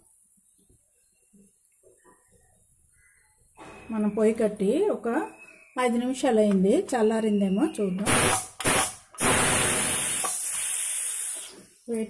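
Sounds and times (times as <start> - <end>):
pressure cooker steam hissing: 8.0 - 11.8.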